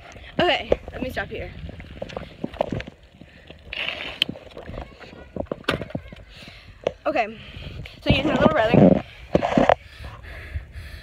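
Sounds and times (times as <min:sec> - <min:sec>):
bicycle rattling: 0:00.0 - 0:09.9.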